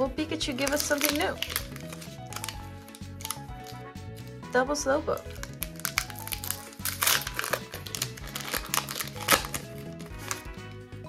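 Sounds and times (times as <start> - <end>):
background music: 0.0 - 11.0
foil wrapper crinkling and tearing: 0.5 - 4.4, 5.2 - 10.8.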